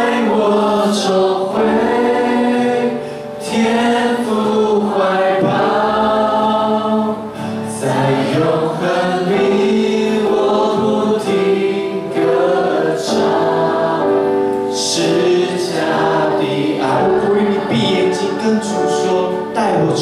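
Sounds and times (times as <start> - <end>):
congregation singing a worship song: 0.0 - 20.0.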